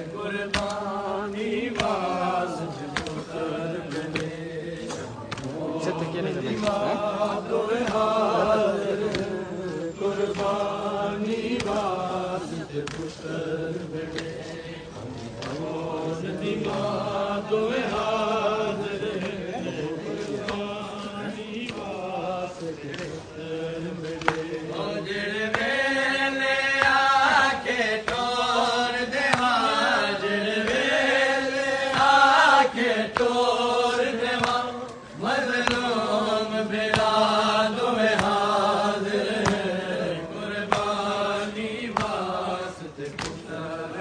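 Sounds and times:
men chanting in unison: 0.0s - 44.0s.

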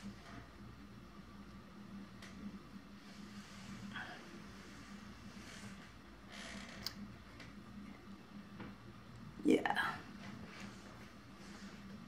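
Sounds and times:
soft rustle: 2.2s - 6.6s, 10.0s - 12.0s.

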